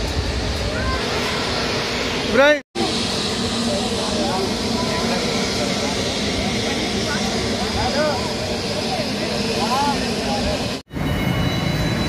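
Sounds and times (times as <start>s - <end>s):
jet aircraft noise: 0.0s - 12.0s
low-flying airliner engine: 0.0s - 12.0s
steady high whine: 0.0s - 12.0s
people's voices: 0.4s - 10.8s.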